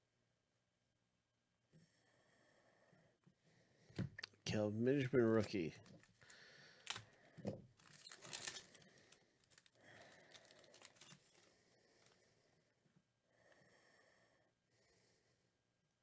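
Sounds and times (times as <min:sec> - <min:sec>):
cards rustling: 0:05.3 - 0:07.2, 0:07.8 - 0:12.2
wrapper crinkling and tearing: 0:05.8 - 0:07.1, 0:07.8 - 0:12.2.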